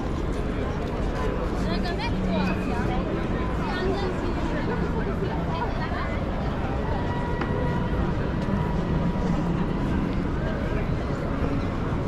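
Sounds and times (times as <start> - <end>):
crowd and footsteps rumble: 0.0 - 12.0.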